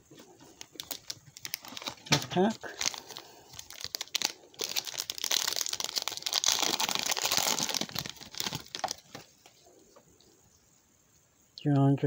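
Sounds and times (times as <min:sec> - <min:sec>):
plastic wrapper crinkling: 0:00.4 - 0:09.6.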